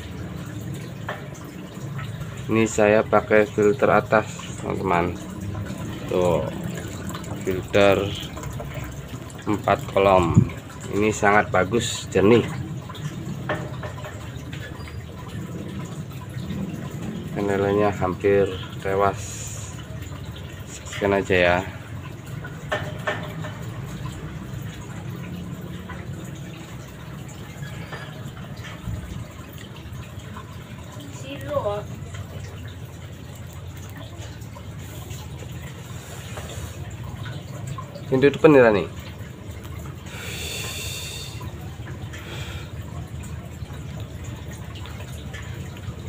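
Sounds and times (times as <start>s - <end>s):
filter water splashing into tank: 0.0s - 46.0s.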